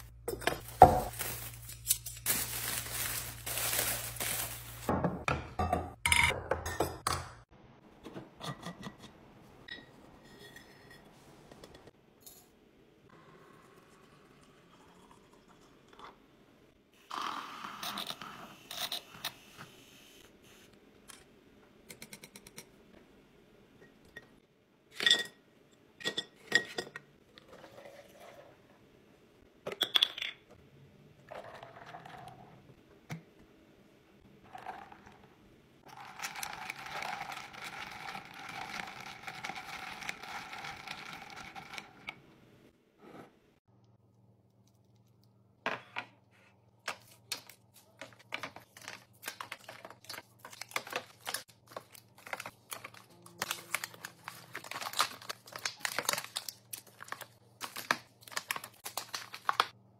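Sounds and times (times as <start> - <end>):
plastic bags crinkling: 0.6 - 4.9, 47.1 - 59.7.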